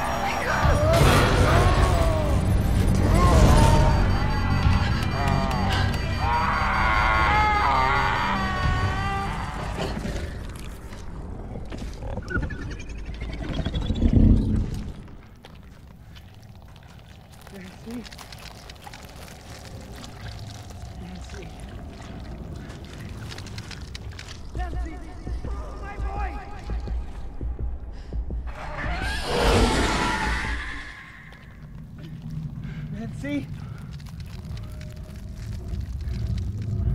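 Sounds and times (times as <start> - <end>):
dramatic score: 0.0 - 13.2, 13.9 - 36.9
wavering high-pitched tones: 2.9 - 9.1.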